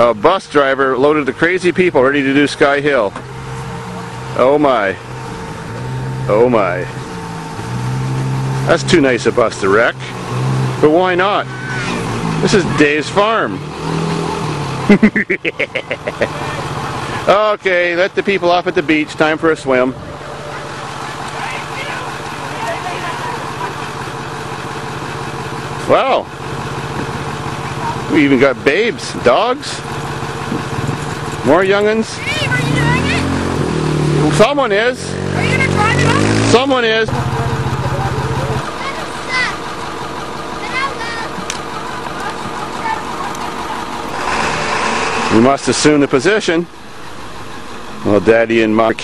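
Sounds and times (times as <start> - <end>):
engine idling: 0.0 - 49.0
faint voices: 16.3 - 24.0, 37.1 - 44.2.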